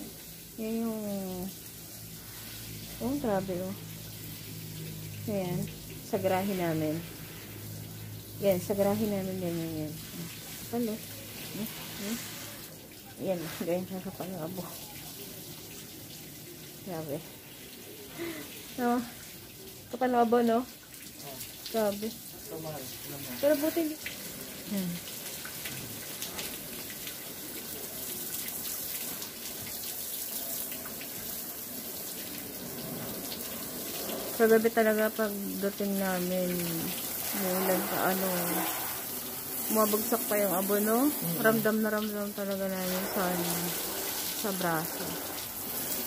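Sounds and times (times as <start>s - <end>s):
water hissing on wet ground: 0.0s - 46.0s.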